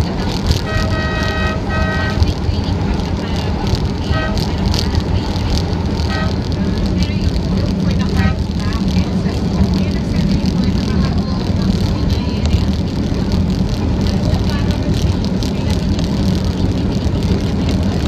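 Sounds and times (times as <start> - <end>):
light-rail train rumbling: 0.0 - 18.0.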